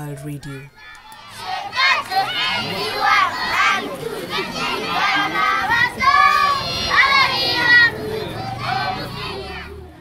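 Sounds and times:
young children singing: 0.8s - 10.0s.

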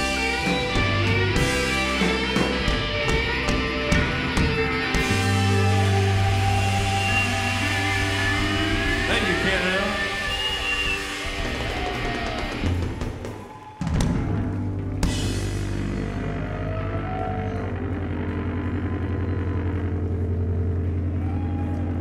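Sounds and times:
distorted electric guitar: 0.0s - 13.2s, 14.0s - 22.0s
rock band playing: 0.0s - 22.0s.

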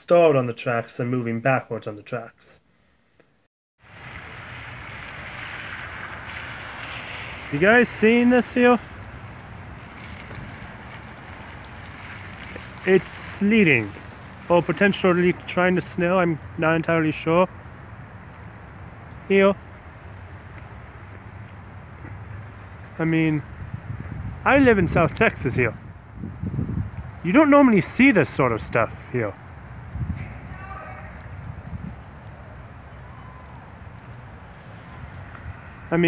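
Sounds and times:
sleet hissing on wet pavement: 3.8s - 16.1s
wind rumble on microphone: 3.9s - 13.0s, 20.1s - 35.9s.

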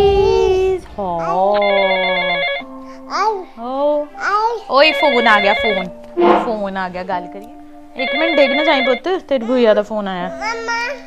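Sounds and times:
electronic warbling ringtone: 1.6s - 2.7s, 4.8s - 6.7s, 8.0s - 9.1s.

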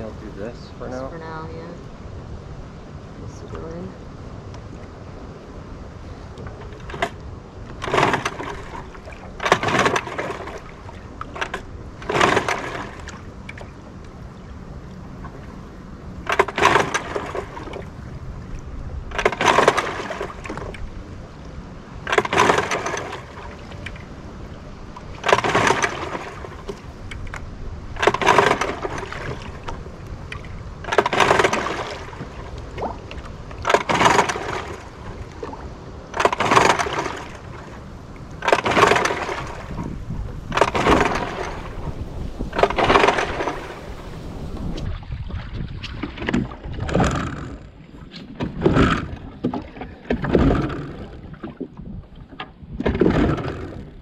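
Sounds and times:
wind and water: 0.0s - 54.0s
outboard engine pull-start: 6.5s - 13.7s, 16.2s - 17.8s, 19.1s - 20.8s, 22.0s - 24.0s, 25.2s - 27.4s, 28.0s - 29.7s, 30.3s - 32.4s, 33.6s - 35.0s, 36.1s - 37.5s, 38.4s - 44.9s, 45.8s - 54.0s.

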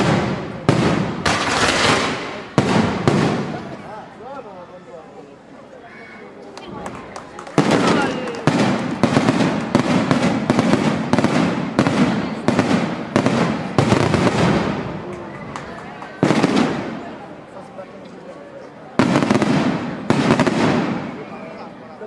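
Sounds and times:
fireworks bursting: 0.0s - 3.9s, 7.6s - 15.3s, 16.2s - 17.2s, 19.0s - 21.4s.

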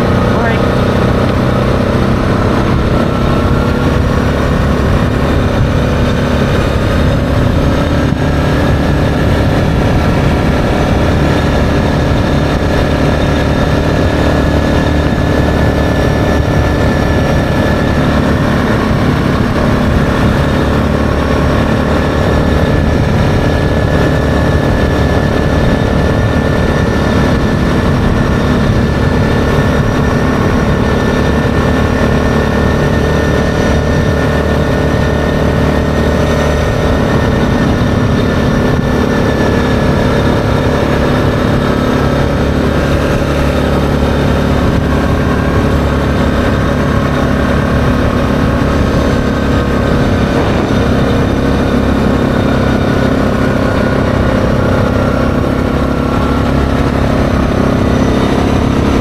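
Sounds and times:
atv engine running: 0.0s - 59.0s
tyre and wind noise: 0.0s - 59.0s.

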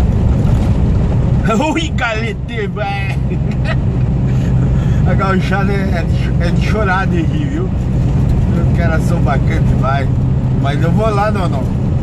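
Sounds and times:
road noise: 0.0s - 12.0s
truck diesel engine droning: 0.0s - 12.0s.

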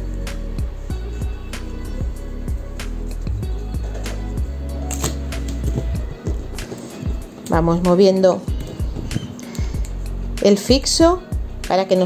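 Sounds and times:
instrumental music with low notes: 0.0s - 12.0s.

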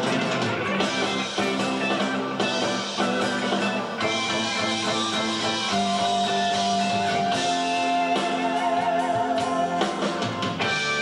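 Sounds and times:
guitar-led rock music: 0.0s - 11.0s.

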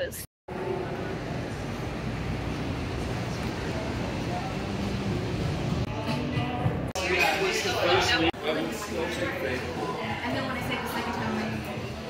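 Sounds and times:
indistinct voices: 0.0s - 12.0s
traffic rumble: 0.5s - 6.0s
music: 4.3s - 12.0s.

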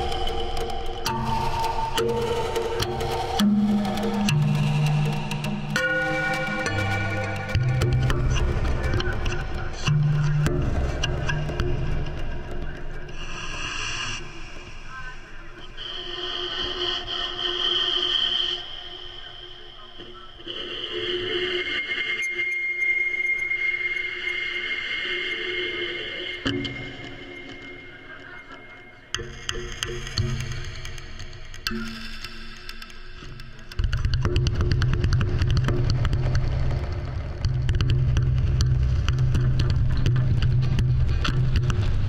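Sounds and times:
low pitched tones and taps: 33.2s - 42.0s.

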